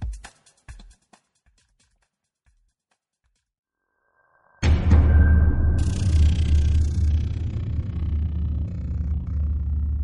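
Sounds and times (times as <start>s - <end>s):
deep cinematic rumble: 5.4s - 10.0s.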